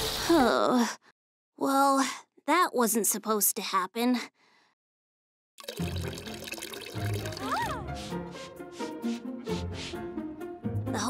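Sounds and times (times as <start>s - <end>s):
cartoon water pouring from bottle: 5.6s - 8.0s
background music: 5.6s - 11.0s.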